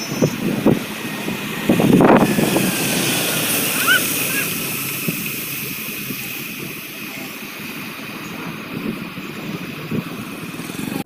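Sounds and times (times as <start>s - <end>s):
vehicles on wet road hissing: 0.0s - 11.0s.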